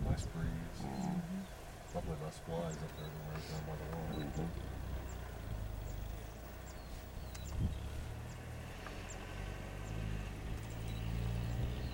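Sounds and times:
low rumble of breeze: 0.0s - 11.9s
faint high bird chirps: 2.7s - 3.3s, 5.0s - 10.0s, 10.6s - 11.9s.

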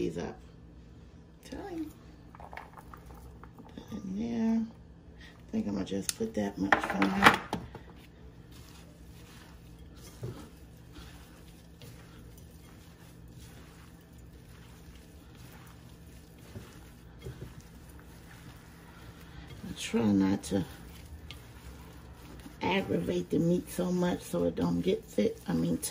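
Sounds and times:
hands squishing meat mixture: 7.7s - 25.9s.

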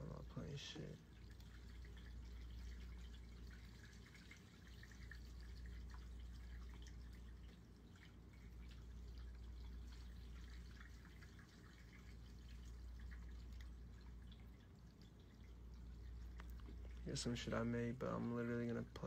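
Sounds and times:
low steady hum: 0.0s - 19.0s
water dripping and trickling: 0.0s - 19.0s.

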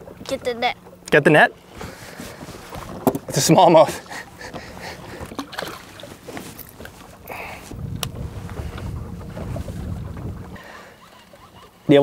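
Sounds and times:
wind rumbling on microphone: 4.5s - 10.7s.

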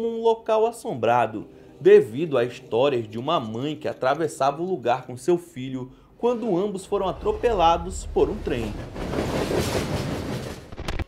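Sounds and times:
train rumbling past: 0.9s - 3.9s, 5.9s - 10.8s.

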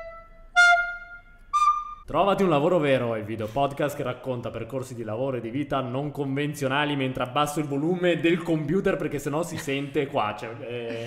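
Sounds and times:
flute-like jingle melody: 0.0s - 2.1s.

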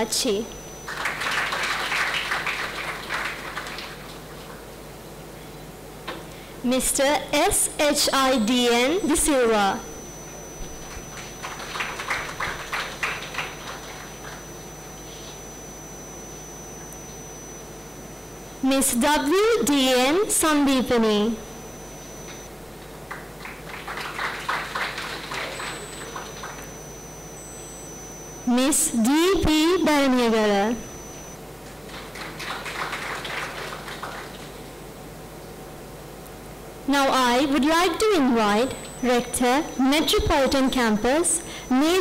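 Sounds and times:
audience applauding: 0.8s - 4.2s, 10.9s - 14.4s, 23.1s - 26.6s, 31.9s - 34.6s.

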